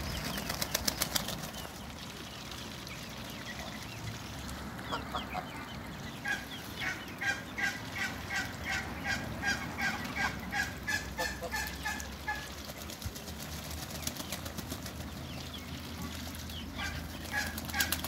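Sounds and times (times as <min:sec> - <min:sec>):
goose honking: 0:06.2 - 0:12.5.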